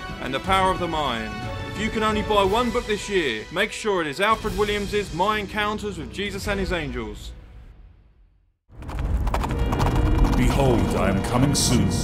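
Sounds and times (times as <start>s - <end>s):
dramatic music: 0.0s - 12.0s
rapid run of knocks: 8.8s - 11.0s
deep rumble: 8.8s - 12.0s.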